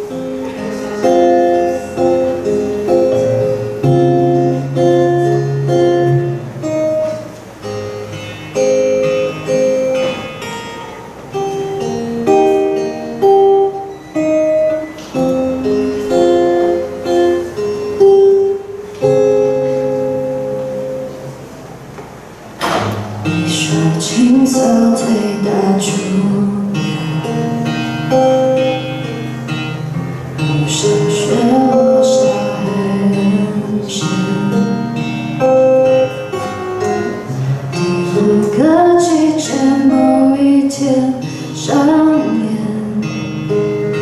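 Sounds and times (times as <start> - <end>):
acoustic guitar picking: 0.0 - 44.0
person singing: 23.2 - 27.8, 30.4 - 35.2, 36.9 - 43.7.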